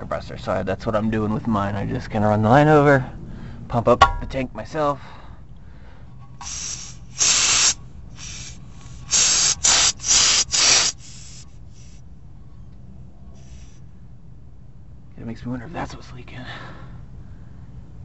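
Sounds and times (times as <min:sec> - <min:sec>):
compressed air hissing from valve: 0:06.4 - 0:12.0, 0:13.4 - 0:13.8.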